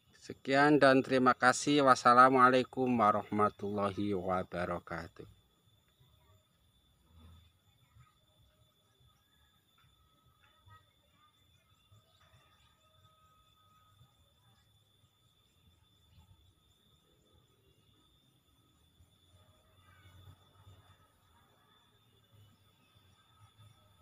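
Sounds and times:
faint steady high tones: 0:00.0 - 0:24.0.

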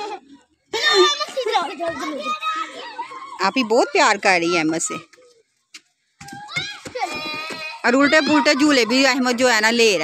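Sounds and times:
children chattering and babbling: 0:00.0 - 0:10.0
children squealing: 0:02.0 - 0:04.1, 0:06.2 - 0:09.3.

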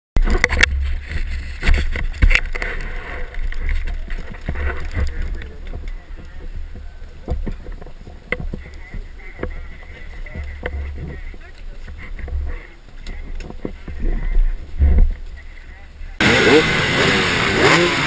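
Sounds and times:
murmur of people talking: 0:02.6 - 0:17.0.

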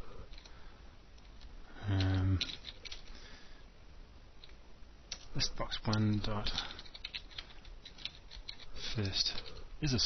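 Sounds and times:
typing on computer keyboard: 0:01.9 - 0:03.1, 0:06.5 - 0:08.7.

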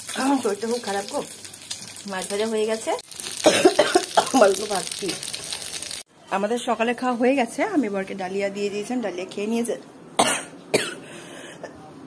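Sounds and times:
person coughing: 0:03.4 - 0:04.4, 0:10.2 - 0:11.0.

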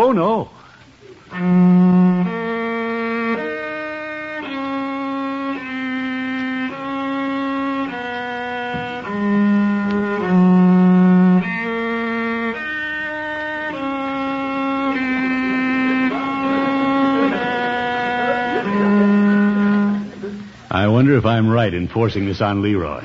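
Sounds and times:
cello long bowed notes: 0:01.2 - 0:21.3.

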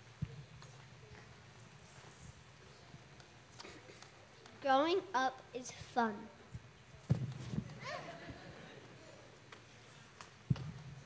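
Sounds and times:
footsteps on wooden stage: 0:07.0 - 0:07.8.

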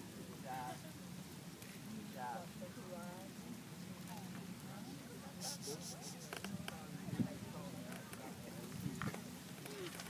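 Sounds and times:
crackling background hiss: 0:00.0 - 0:10.0
faint voices: 0:00.0 - 0:10.0.

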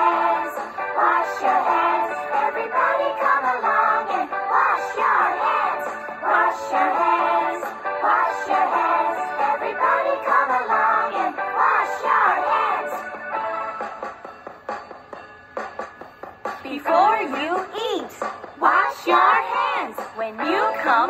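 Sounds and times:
children's song with sung vocals: 0:00.0 - 0:14.0, 0:16.6 - 0:21.0.

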